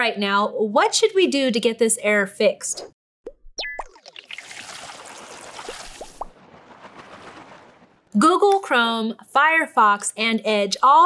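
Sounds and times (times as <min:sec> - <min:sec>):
quick rising pops: 0:03.3 - 0:08.2
small rising blips: 0:03.3 - 0:08.2.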